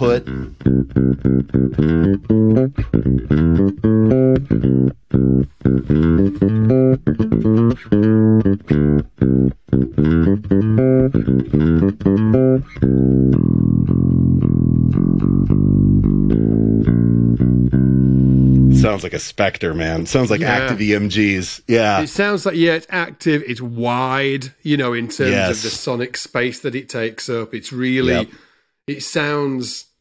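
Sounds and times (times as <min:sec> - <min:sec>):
electric bass riff: 0:00.0 - 0:19.0, 0:25.2 - 0:25.7, 0:28.0 - 0:28.3.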